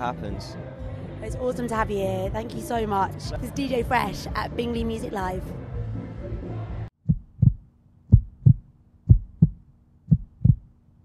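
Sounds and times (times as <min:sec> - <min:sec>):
heartbeat thumps: 0:07.0 - 0:10.8.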